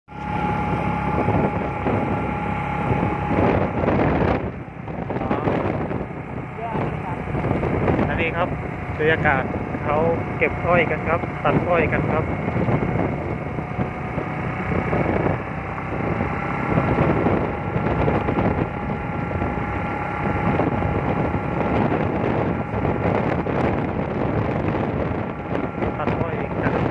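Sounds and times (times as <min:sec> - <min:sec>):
road noise: 0:00.0 - 0:26.9
vehicle engine: 0:00.0 - 0:26.9
wind buffeting microphone: 0:00.1 - 0:26.9.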